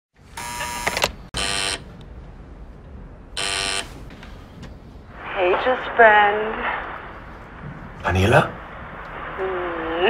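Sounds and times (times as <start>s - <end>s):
door intercom buzzer: 0.4s - 1.8s, 3.4s - 3.9s
low room hum: 0.4s - 10.0s.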